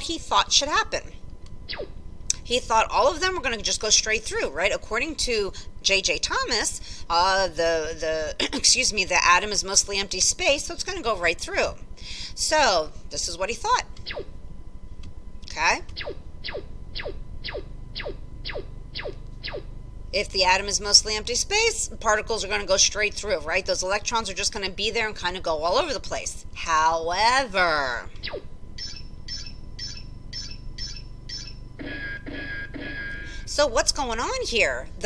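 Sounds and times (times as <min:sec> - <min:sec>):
steady held electronic tone: 0:00.0 - 0:35.0
lower electronic pulses: 0:01.5 - 0:02.5, 0:15.4 - 0:22.8
short high electronic beeps: 0:28.8 - 0:33.4.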